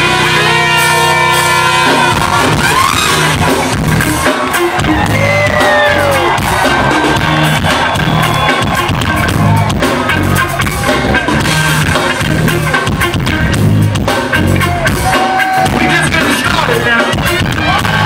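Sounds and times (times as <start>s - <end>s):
brass rock band playing: 0.0s - 18.0s
trumpet lead with bending notes: 0.0s - 18.0s.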